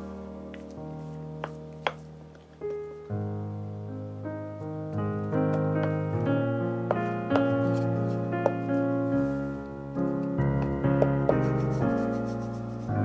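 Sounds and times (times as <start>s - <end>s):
background piano music: 0.0s - 13.0s.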